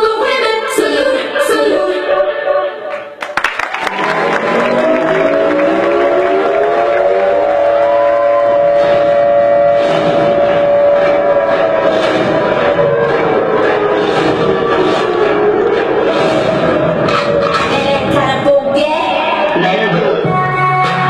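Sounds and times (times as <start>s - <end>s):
people singing: 0.0s - 3.2s, 10.7s - 21.0s
musical backing: 0.0s - 21.0s.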